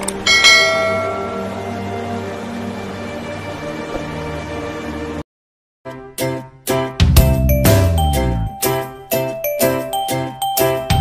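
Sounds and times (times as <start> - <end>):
background music: 0.0 - 5.2, 5.9 - 11.0
bell chime notification: 0.3 - 1.8.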